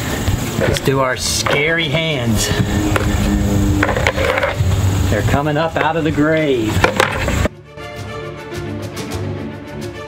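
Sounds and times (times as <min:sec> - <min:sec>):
low steady hum: 0:00.0 - 0:07.5.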